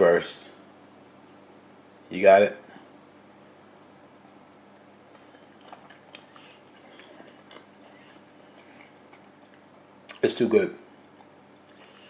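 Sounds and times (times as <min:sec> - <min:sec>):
person chewing food: 0:05.1 - 0:10.2, 0:11.0 - 0:12.0.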